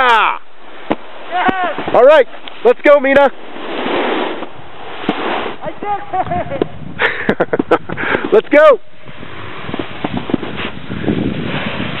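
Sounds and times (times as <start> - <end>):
wind buffeting microphone: 0.8 - 8.3, 8.9 - 12.0.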